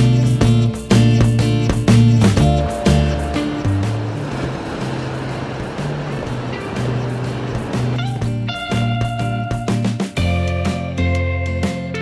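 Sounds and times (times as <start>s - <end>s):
background music with bass notes: 0.0s - 12.0s
steady wash of noise: 2.5s - 8.1s.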